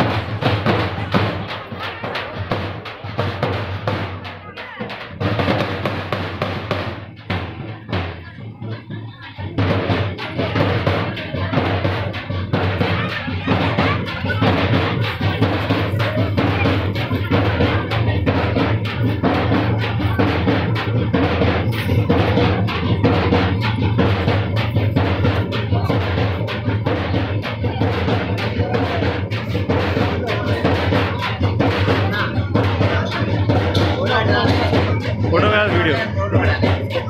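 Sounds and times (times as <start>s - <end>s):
loud drum-led music: 0.0s - 37.0s
voices: 0.0s - 37.0s.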